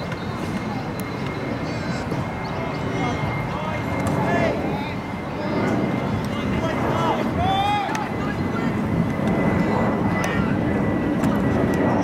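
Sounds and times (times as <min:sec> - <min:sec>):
distant players shouting: 0:06.2 - 0:08.8.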